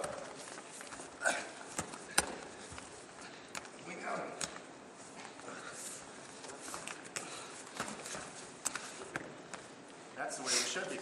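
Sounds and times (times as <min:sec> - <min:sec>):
bodies and feet scuffing on mat: 0:00.0 - 0:11.0.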